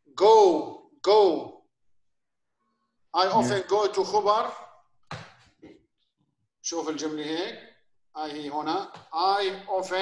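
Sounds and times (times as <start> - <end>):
person saying a word: 3.3 - 3.6.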